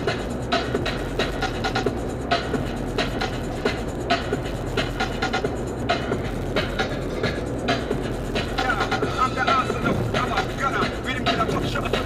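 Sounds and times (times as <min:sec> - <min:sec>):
car driving drone: 0:00.0 - 0:12.0
music with steady beat: 0:00.0 - 0:12.0.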